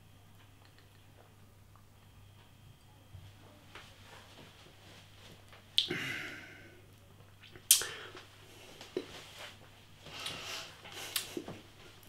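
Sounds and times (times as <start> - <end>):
lip smack: 0.6 - 1.0, 7.4 - 8.0
mouth click: 0.6 - 1.0, 7.4 - 8.0.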